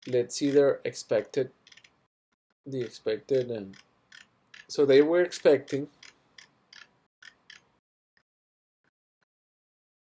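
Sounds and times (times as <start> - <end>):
mouse and keyboard clicks: 1.6 - 2.0, 2.8 - 4.7, 5.6 - 7.7.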